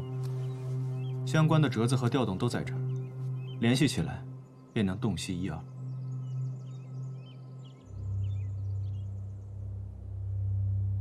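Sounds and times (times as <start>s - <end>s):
faint bird chirps: 0.0s - 9.8s
low sustained drone: 0.0s - 11.0s.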